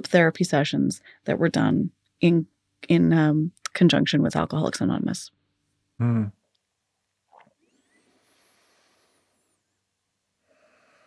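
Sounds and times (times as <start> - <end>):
soft breath: 7.9 - 9.8, 10.4 - 11.0.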